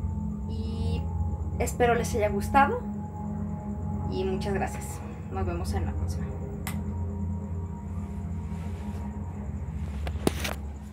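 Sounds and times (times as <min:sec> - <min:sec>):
low droning hum: 0:00.0 - 0:10.9.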